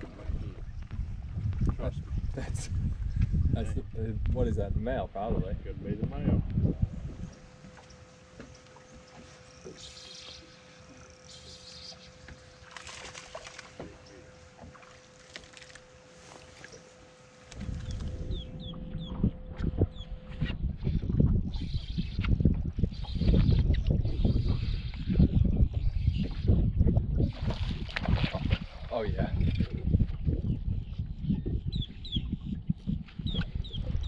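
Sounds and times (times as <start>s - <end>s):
wind buffeting microphone: 0.0s - 8.1s, 17.4s - 34.0s
faint steady hum: 0.0s - 34.0s.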